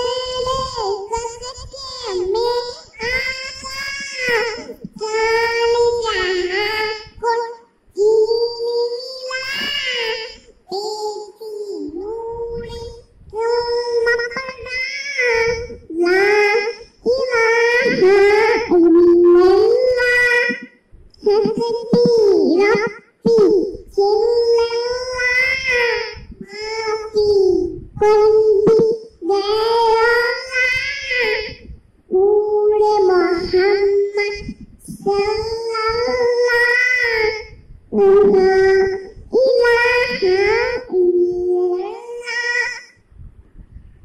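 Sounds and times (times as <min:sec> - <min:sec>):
girl singing unaccompanied: 0:00.0 - 0:43.0.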